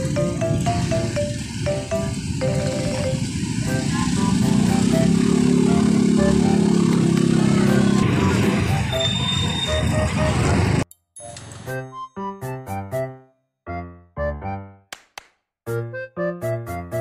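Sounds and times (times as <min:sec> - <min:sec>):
plucked background music: 0:00.0 - 0:09.0, 0:15.7 - 0:17.0
vehicle engine passing by: 0:00.0 - 0:10.8
street traffic: 0:00.0 - 0:11.9.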